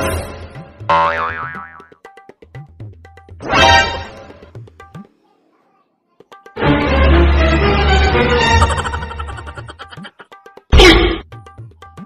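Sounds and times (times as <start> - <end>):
background music with light beat: 0.4 - 3.4, 4.1 - 5.2, 6.2 - 12.0
comedic boing sound effect: 0.9 - 2.0.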